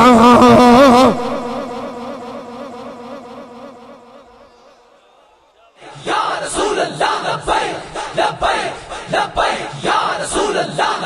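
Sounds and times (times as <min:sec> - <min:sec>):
echoing man's vocal note: 0:00.0 - 0:05.0.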